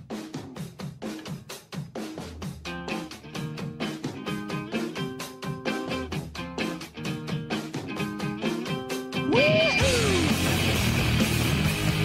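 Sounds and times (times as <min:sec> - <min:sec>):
drum kit beat: 0:00.0 - 0:12.0.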